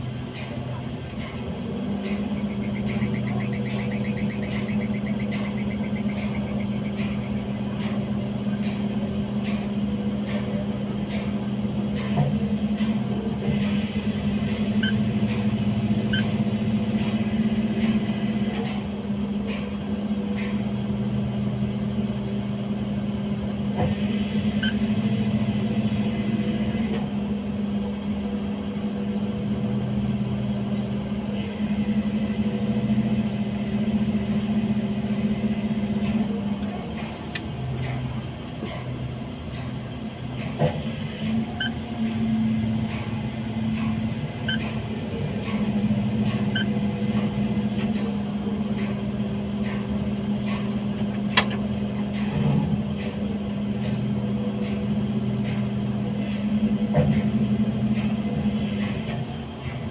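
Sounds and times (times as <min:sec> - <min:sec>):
industrial machinery humming: 0:00.0 - 0:59.9.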